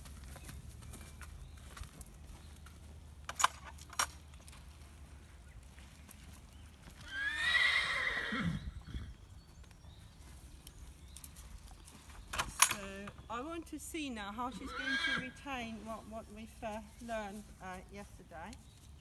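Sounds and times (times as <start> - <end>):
hoof steps on gravel: 0.0 - 7.4, 8.9 - 13.7, 15.4 - 19.0
horse whinnying: 7.0 - 9.2, 14.6 - 15.4.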